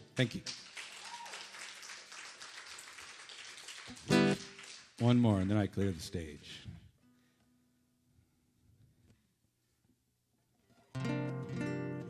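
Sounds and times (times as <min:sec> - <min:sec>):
acoustic guitar strummed: 0:10.9 - 0:12.0.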